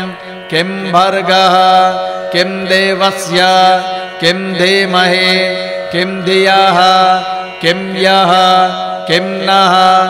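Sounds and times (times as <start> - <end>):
person chanting verses: 0.0 - 10.0.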